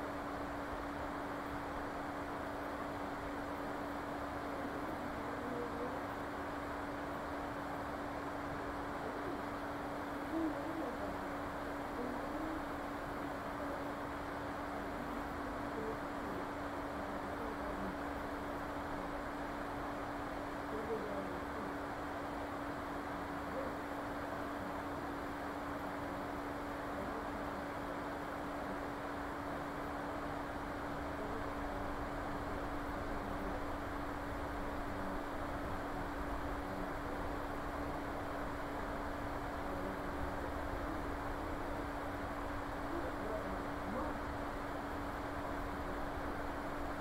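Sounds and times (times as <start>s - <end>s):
constant low hum: 0.0s - 47.0s.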